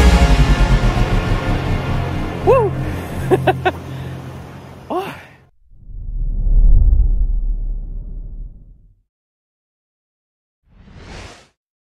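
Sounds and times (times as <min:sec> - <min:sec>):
low background hum: 0:01.2 - 0:05.5
man sighing: 0:02.4 - 0:04.2, 0:04.9 - 0:05.5
deep rumbling sound effect: 0:05.6 - 0:08.9.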